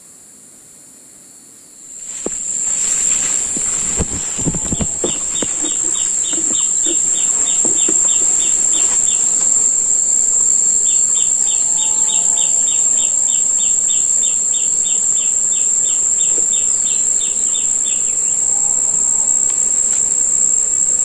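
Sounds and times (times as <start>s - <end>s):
bird chirping: 1.9s - 18.5s
faint lower bird calls: 1.9s - 20.3s
high-pitched insect drone: 1.9s - 21.0s.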